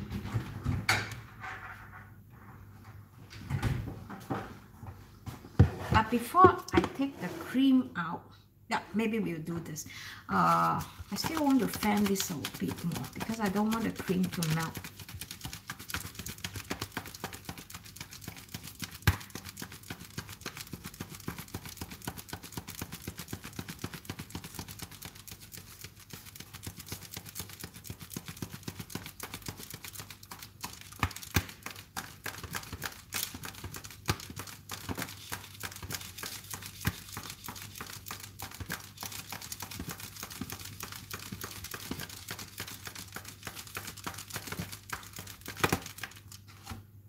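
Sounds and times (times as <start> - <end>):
card flapping: 11.0 - 46.8.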